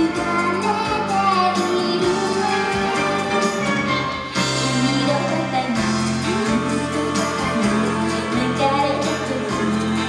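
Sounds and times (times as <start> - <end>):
instrumental accompaniment: 0.0 - 10.0
woman singing pop song: 0.0 - 10.0.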